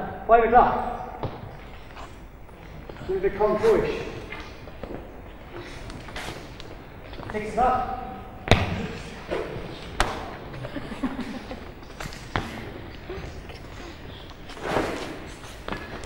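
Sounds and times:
feet thudding on hall floor: 8.4s - 16.0s.

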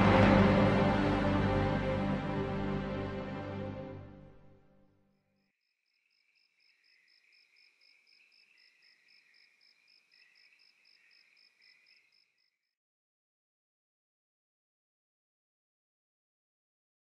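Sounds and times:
crickets chirping: 5.9s - 12.6s.

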